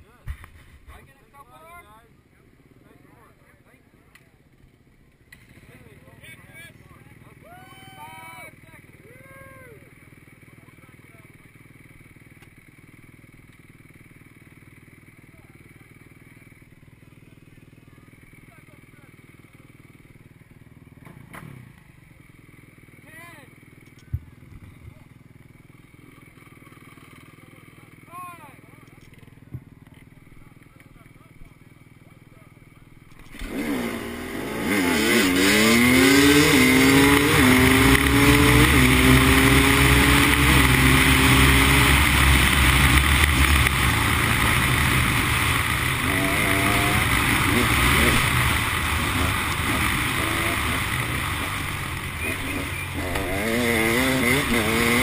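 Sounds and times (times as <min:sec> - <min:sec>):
dirt bike engine revving: 0:32.6 - 0:55.0.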